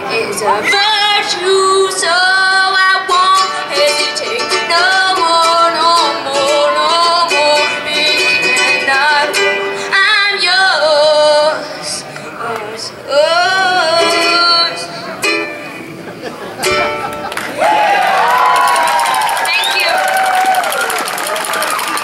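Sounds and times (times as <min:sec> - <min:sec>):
person singing into microphone: 0:00.0 - 0:15.3
ukulele strumming: 0:00.1 - 0:17.6.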